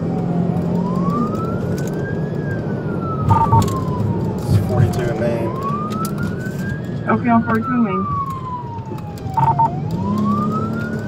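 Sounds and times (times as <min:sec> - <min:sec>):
police siren wailing: 0:00.0 - 0:11.0
road noise rumble: 0:00.0 - 0:11.0
short beeps: 0:03.3 - 0:03.7, 0:09.4 - 0:09.7.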